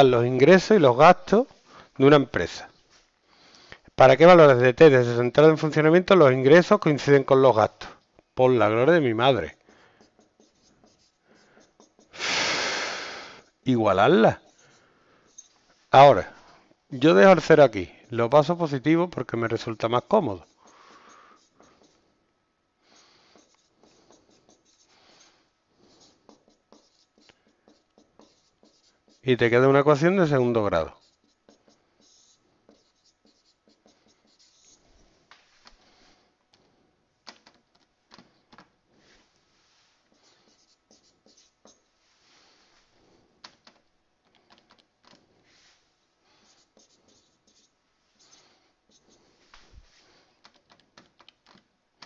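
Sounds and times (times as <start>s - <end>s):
marker pen writing on whiteboard: 8.8s - 12.2s, 13.4s - 15.8s, 17.0s - 22.1s, 22.8s - 39.1s, 40.0s - 45.4s, 46.2s - 52.0s.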